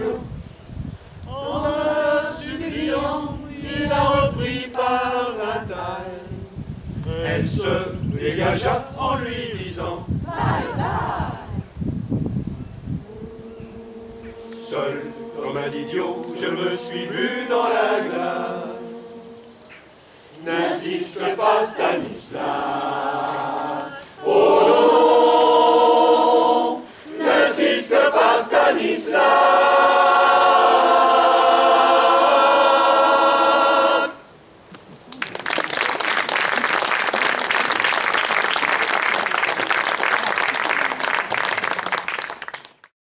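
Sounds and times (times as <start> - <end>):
choir singing sustained chords: 0.0 - 11.8, 12.9 - 34.6
audience applauding: 35.1 - 42.9.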